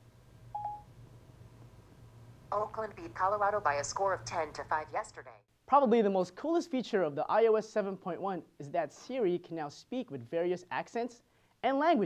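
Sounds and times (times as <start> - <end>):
faint low hum: 0.0 - 12.0
short electronic beep: 0.6 - 0.9.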